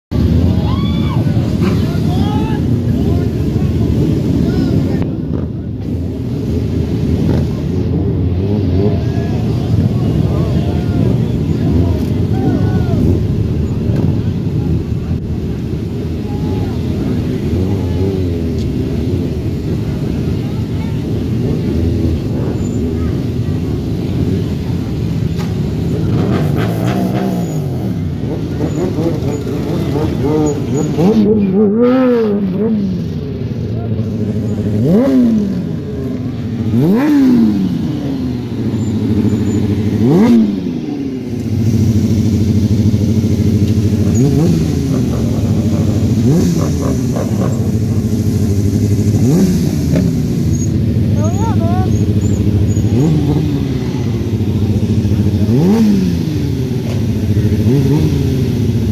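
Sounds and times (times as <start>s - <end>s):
crowd talking: 0.1s - 58.9s
motorcycle engines revving: 0.1s - 58.9s.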